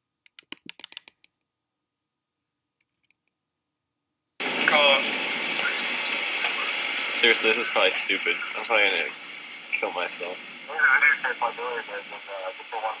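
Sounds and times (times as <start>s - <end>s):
loud steady rushing noise: 4.4s - 13.0s
person's voice: 4.6s - 5.9s, 6.5s - 13.0s.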